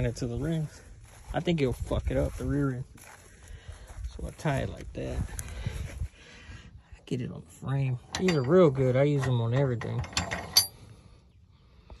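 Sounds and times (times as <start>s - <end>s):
metal strap hooks clinking: 8.1s - 8.8s, 9.7s - 10.8s.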